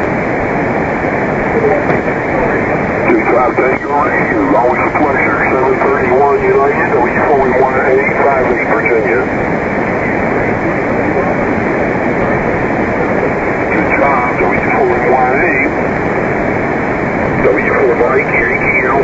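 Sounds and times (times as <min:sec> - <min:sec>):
radio static hiss: 0:00.0 - 0:19.0
distorted radio voice: 0:01.5 - 0:09.4, 0:10.5 - 0:15.8, 0:17.3 - 0:19.0.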